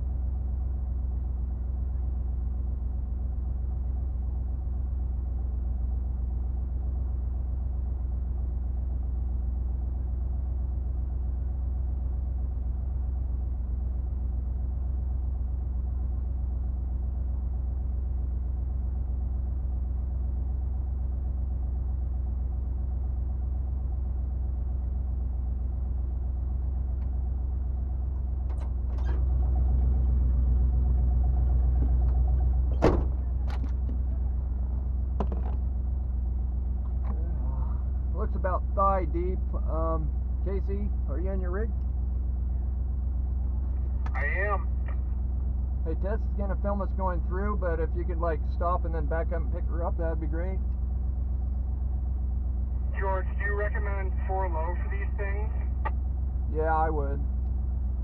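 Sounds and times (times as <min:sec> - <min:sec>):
car engine idling: 0:00.0 - 0:58.0.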